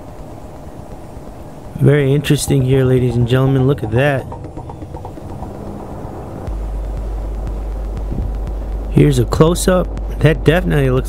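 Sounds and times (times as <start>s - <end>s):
low rumbling drone: 1.8s - 10.2s.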